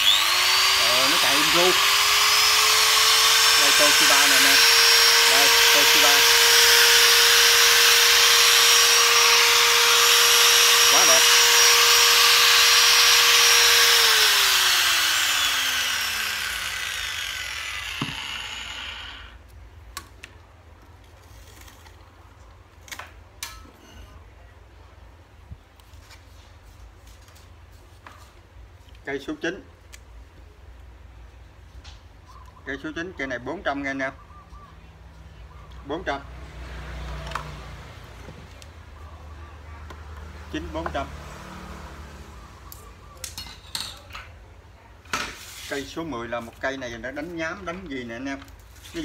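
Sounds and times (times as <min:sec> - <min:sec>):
angle grinder whining: 0:00.0 - 0:19.4
grinder winding down: 0:00.0 - 0:19.4.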